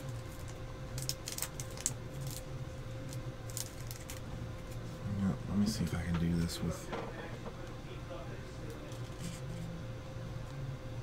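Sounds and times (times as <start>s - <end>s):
trading cards clicking and rustling: 0.0s - 2.5s
faint electrical hum: 0.0s - 11.0s.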